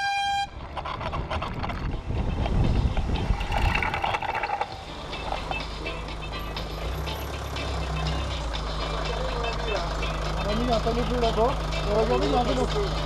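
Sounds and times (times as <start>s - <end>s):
vehicle engine idling: 0.4s - 13.0s.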